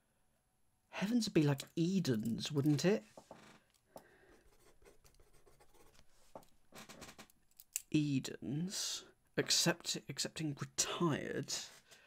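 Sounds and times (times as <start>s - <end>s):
pen scratching on paper: 4.5s - 6.1s.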